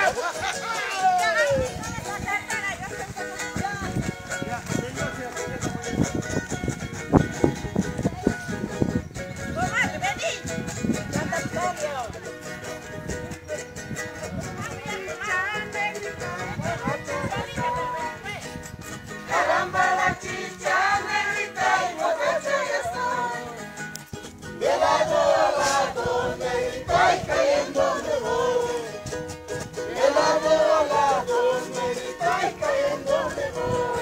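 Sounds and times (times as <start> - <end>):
strummed string instruments: 0.0 - 34.0
voices singing: 15.0 - 18.2, 19.2 - 23.8, 24.5 - 34.0.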